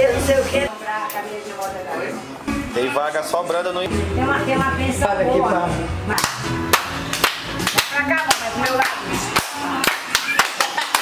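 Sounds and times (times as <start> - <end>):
hand clapping: 6.2 - 11.0.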